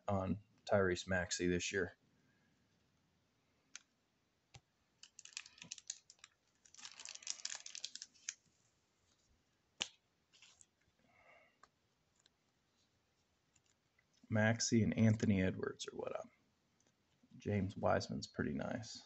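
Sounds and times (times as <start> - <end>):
plastic packaging crinkling: 5.0 - 8.5, 10.3 - 10.8.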